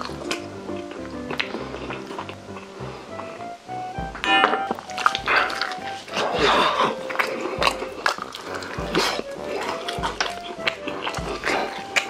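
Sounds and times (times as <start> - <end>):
crunching fried chicken: 0.0 - 2.8, 4.1 - 12.0
wet mouth sounds: 0.0 - 12.0.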